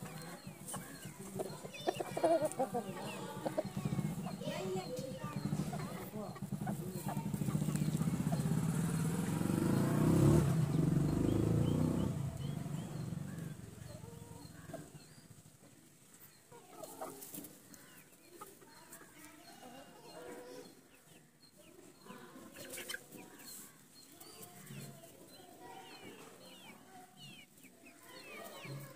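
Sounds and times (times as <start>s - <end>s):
chickens clucking: 0.0s - 28.9s.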